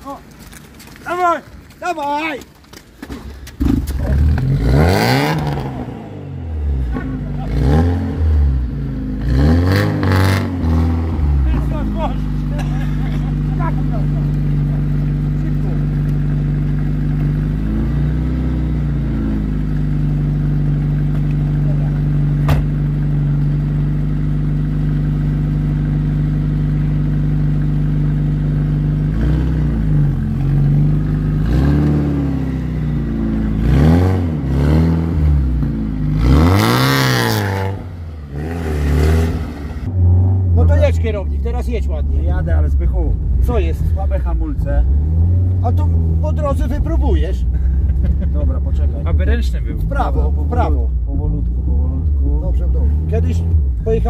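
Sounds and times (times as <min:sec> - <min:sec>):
car engine revving and idling: 0:03.6 - 0:54.0.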